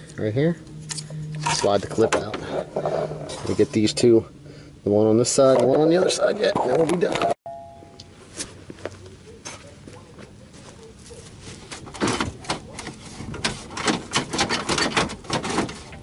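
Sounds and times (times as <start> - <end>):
plastic bumper parts clicking and knocking: 11.7 - 16.0.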